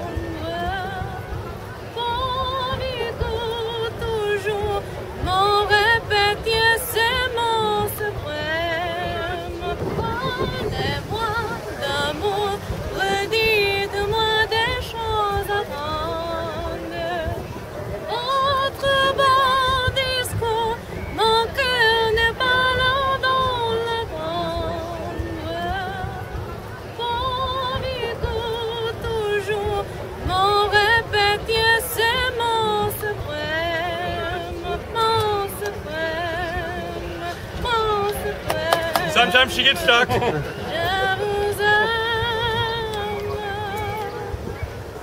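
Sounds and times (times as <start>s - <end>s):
low background rumble: 0.0s - 45.0s
woman singing with vibrato: 0.0s - 45.0s.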